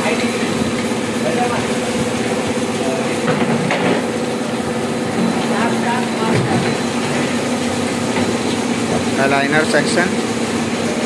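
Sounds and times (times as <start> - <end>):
machine humming and rattling: 0.0 - 11.0.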